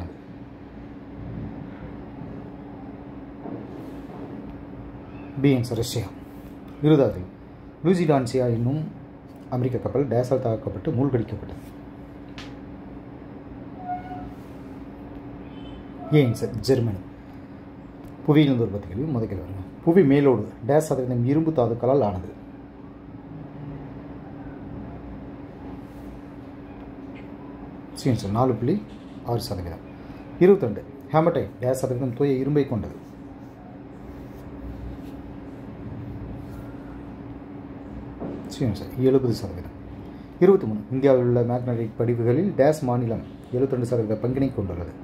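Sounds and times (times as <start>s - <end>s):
low rumbling hum: 0.0s - 43.7s.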